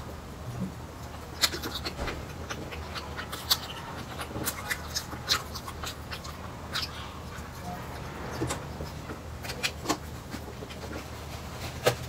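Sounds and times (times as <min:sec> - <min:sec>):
close chewing: 0:00.0 - 0:12.0
wet lip smacks: 0:01.0 - 0:07.5.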